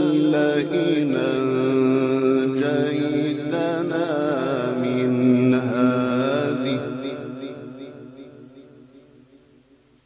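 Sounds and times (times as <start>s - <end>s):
man reciting melodically: 0.0s - 8.8s.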